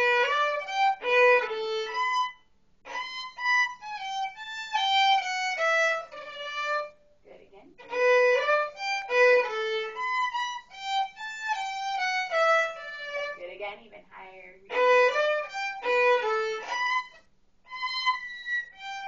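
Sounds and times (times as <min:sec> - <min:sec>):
solo violin melody: 0:00.0 - 0:07.0, 0:07.8 - 0:13.4, 0:14.7 - 0:19.0.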